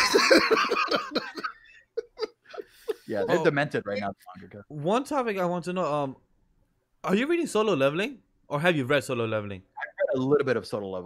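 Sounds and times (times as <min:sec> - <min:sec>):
men laughing: 0:00.0 - 0:04.1.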